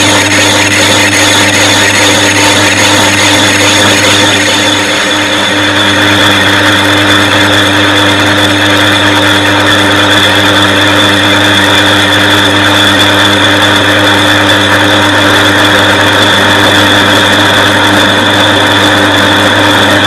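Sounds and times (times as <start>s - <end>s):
high whine of lathe: 0.0s - 20.0s
lathe tool cutting metal: 0.0s - 20.0s
metal lathe humming: 0.0s - 20.0s.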